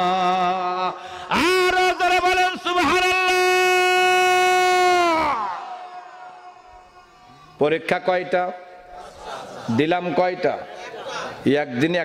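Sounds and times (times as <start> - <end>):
man shouting into microphone: 0.0 - 7.0.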